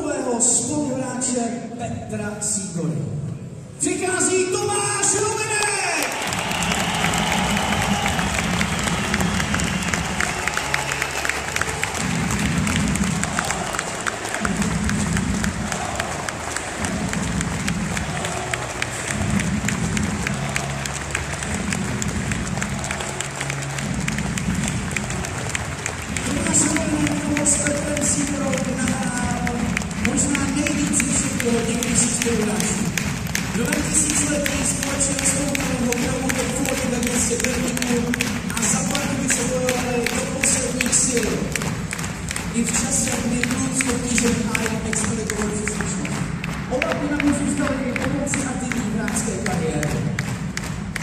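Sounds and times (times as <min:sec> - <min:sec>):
crowd applauding: 0:04.1 - 0:51.0
slow music with low notes: 0:06.5 - 0:32.0.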